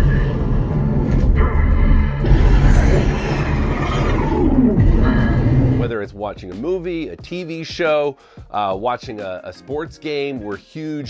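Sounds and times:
fighter jet roar: 0.0s - 5.9s.

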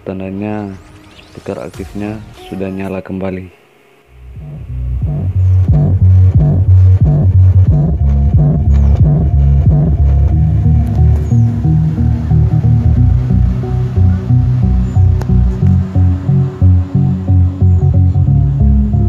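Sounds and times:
deep bass music from subwoofer: 4.2s - 19.0s.

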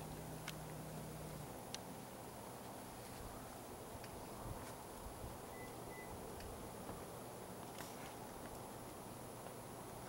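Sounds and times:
steady high whine: 0.0s - 10.0s.

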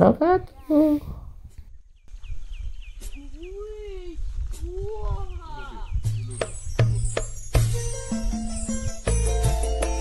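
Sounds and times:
music: 6.1s - 10.0s.

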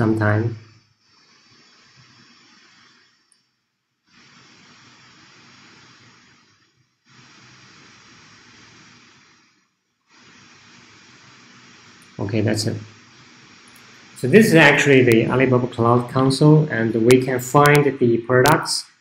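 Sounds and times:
faint steady hiss: 0.0s - 19.0s.

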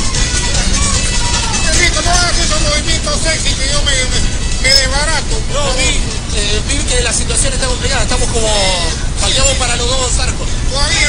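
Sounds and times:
indistinct voices talking: 0.0s - 11.0s
steady low rumble: 0.0s - 11.0s.

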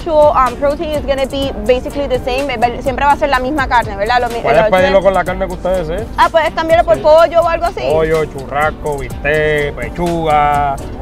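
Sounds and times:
background music: 0.0s - 11.0s
person talking: 4.2s - 10.1s.

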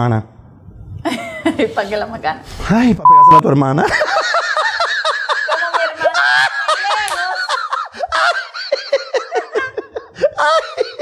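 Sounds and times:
man and woman laughing: 1.1s - 1.8s, 3.8s - 11.0s.

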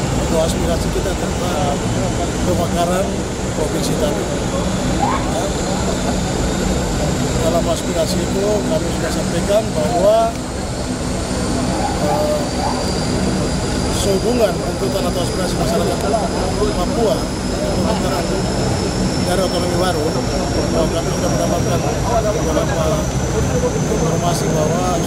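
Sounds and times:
crowd voices: 0.0s - 25.0s
propeller aircraft engines droning: 0.0s - 25.0s
thin high whine: 0.0s - 25.0s.

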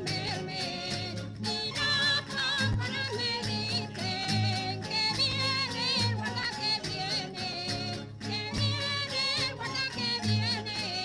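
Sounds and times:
folk dance song singing: 0.0s - 11.0s.

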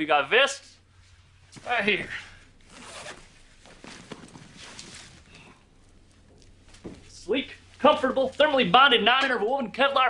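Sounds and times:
bag and fabric vests rustling: 1.0s - 8.6s.

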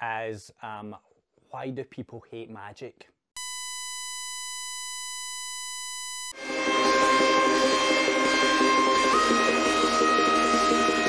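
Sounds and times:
steady electronic beep tone: 3.4s - 6.3s.

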